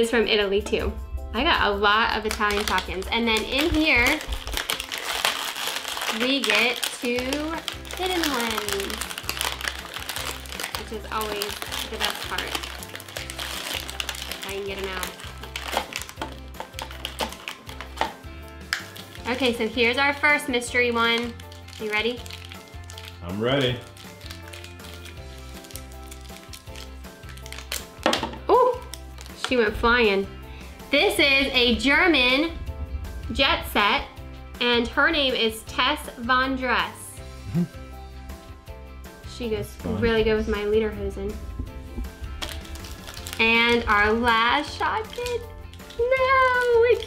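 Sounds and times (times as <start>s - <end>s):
light instrumental music: 0.0s - 47.0s
plastic packaging crinkling: 2.2s - 20.0s, 20.9s - 29.5s, 42.0s - 47.0s.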